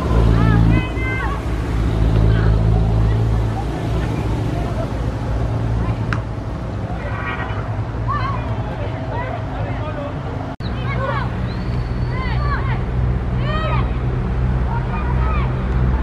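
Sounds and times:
distant players shouting: 0:00.0 - 0:16.0.

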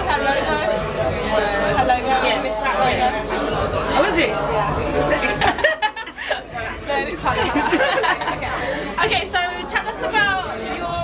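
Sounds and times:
overlapping chatter: 0:00.0 - 0:11.0
women laughing: 0:05.0 - 0:09.0.

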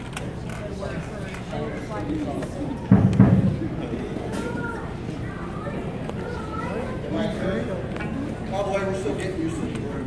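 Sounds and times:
indistinct people talking: 0:00.0 - 0:10.0.

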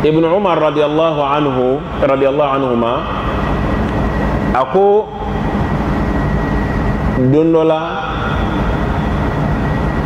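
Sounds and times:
loud rushing noise: 0:00.0 - 0:10.0
thin high whine: 0:00.0 - 0:10.0.

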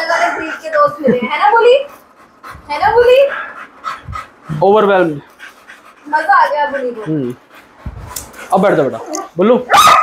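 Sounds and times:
dog panting: 0:00.0 - 0:09.4.

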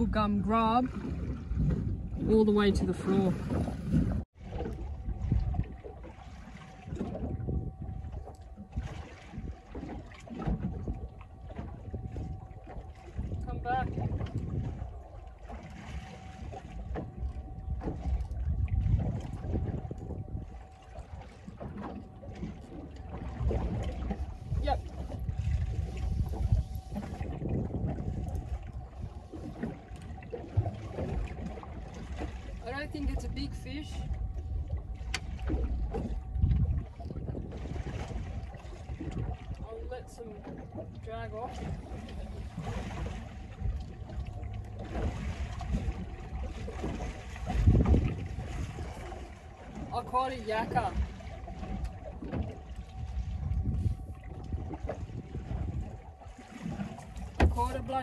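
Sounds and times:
water against boat hull: 0:00.0 - 0:58.0
wind buffeting microphone: 0:00.0 - 0:58.0
thin steady whine: 0:04.7 - 0:58.0.

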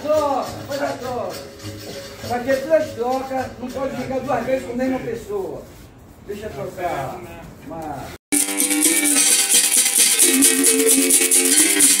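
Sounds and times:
shaker rattle: 0:00.0 - 0:03.8, 0:08.3 - 0:12.0.

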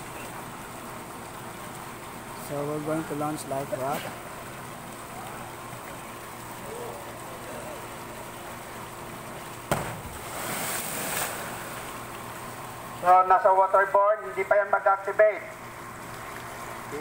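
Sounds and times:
churning water: 0:00.0 - 0:17.0
low background hum: 0:00.0 - 0:17.0
canister splashing into water: 0:09.7 - 0:11.8.

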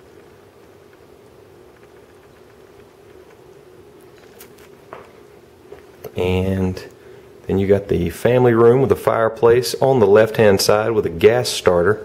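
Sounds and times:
faint steady hum: 0:00.0 - 0:12.0
low hiss: 0:00.0 - 0:12.0
soft ticks: 0:01.7 - 0:03.4.

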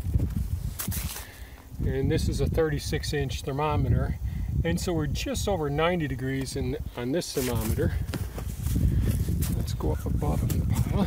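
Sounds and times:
footsteps on compost: 0:00.0 - 0:01.7, 0:07.3 - 0:11.0
low microphone rumble: 0:00.0 - 0:11.0
sharp crunch: 0:00.2 - 0:01.6.

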